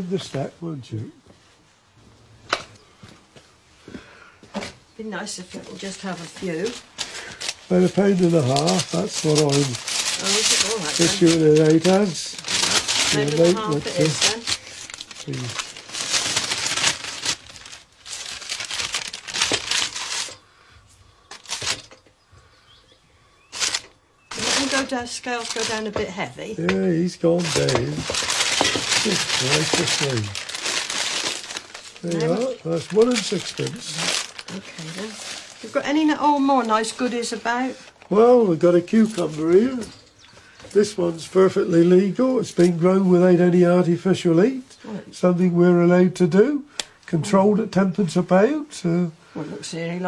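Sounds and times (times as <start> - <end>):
paper bag crinkling: 5.6 - 20.4, 21.3 - 22.0, 23.5 - 26.2, 27.0 - 39.9.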